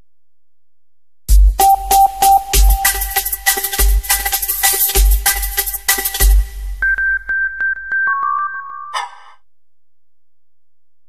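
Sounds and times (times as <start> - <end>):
electronic jingle chord: 1.6 - 3.5.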